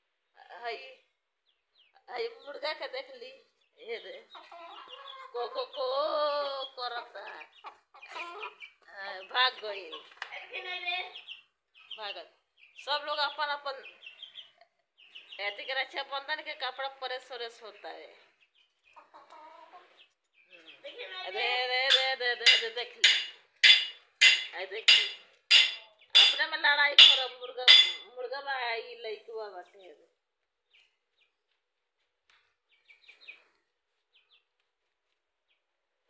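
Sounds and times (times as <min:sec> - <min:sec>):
chicken clucking: 0:04.0 - 0:11.4, 0:17.8 - 0:23.3
rooster clucking: 0:04.4 - 0:05.8, 0:07.6 - 0:08.6.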